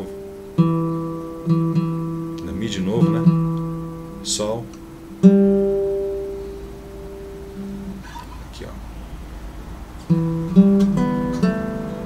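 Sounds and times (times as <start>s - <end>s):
classical guitar plucked notes: 0.0s - 8.5s, 9.9s - 12.0s.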